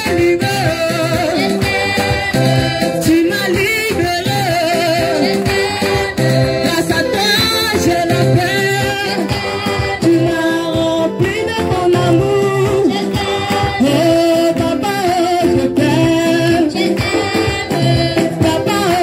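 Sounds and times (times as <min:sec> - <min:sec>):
congregation singing worship song: 0:00.0 - 0:19.0
woman singing into microphone: 0:00.0 - 0:19.0.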